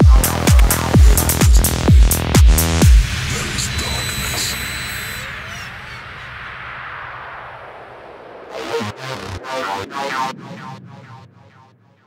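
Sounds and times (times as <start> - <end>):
electronic techno music: 0.0 - 6.4, 8.5 - 11.6.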